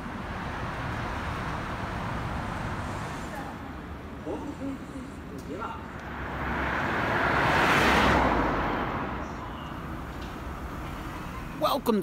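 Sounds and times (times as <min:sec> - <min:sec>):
car passing by: 0:00.0 - 0:04.0, 0:05.5 - 0:11.6
traffic hum: 0:00.0 - 0:12.0.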